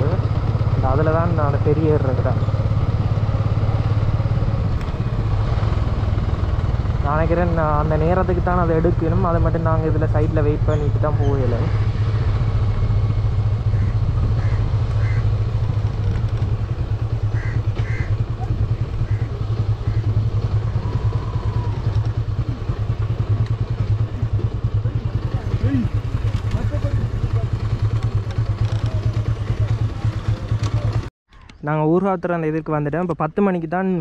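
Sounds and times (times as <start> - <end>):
motorcycle engine running: 0.0 - 31.1
road and wind noise: 0.0 - 34.0.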